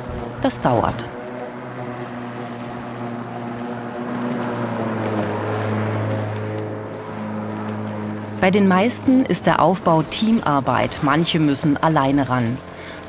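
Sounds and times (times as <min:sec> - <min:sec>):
lawn mower humming: 0:00.0 - 0:13.0.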